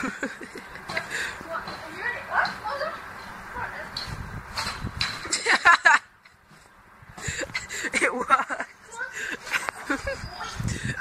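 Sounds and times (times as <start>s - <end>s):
young voice laughing or shouting: 7.4s - 11.0s.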